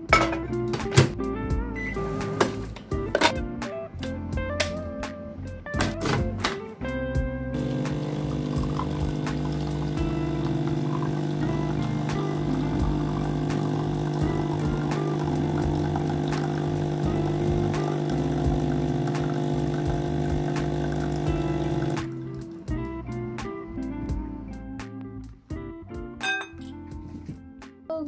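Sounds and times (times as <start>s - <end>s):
coffee machine pump humming: 7.5s - 22.5s.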